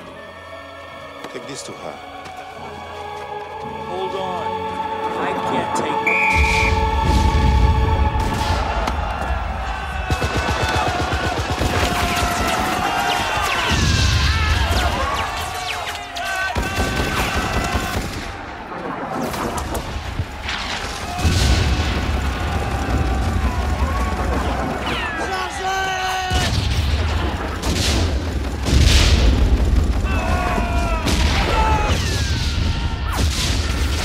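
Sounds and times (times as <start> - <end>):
music: 0.0 - 15.9
heavy explosions: 6.4 - 15.8, 16.5 - 34.0
rifle and machine-gun fire: 7.1 - 18.6, 20.3 - 25.6, 26.3 - 32.4.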